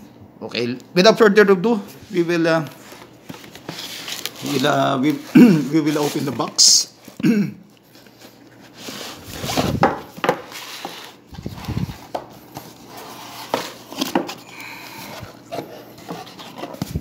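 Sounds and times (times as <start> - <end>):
cardboard packaging being handled: 2.0 - 7.2, 7.8 - 17.0.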